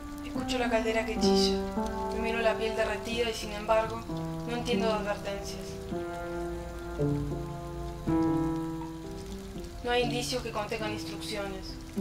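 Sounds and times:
music of slow held notes: 0:00.0 - 0:12.0
water boiling in a pot: 0:00.0 - 0:12.0.

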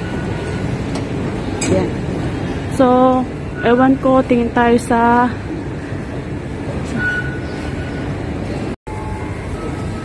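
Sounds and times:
rumbling station ambience: 0:00.0 - 0:10.0.

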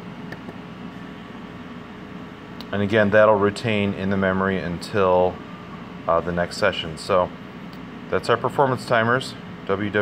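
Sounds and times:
room noise hum and hiss: 0:00.0 - 0:10.0.

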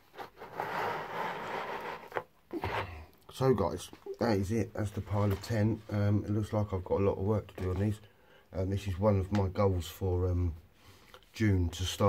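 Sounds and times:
figures scraping across table: 0:00.1 - 0:03.1.

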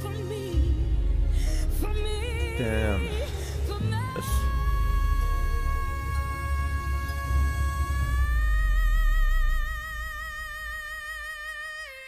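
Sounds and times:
low backing tone: 0:00.0 - 0:11.0.

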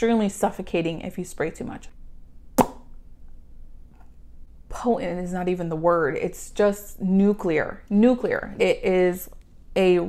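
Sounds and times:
sharp pop: 0:02.6 - 0:03.0.

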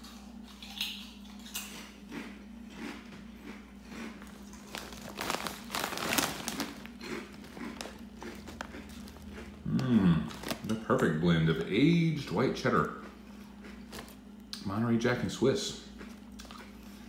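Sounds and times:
crunchy chewing of chips: 0:00.0 - 0:17.0
chip bag crinkling: 0:02.8 - 0:14.6.

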